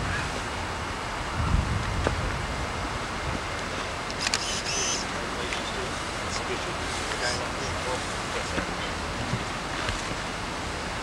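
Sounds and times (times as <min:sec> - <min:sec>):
wind rumble: 0:00.0 - 0:04.4
microphone hiss: 0:00.0 - 0:11.0
distant voices: 0:02.9 - 0:11.0.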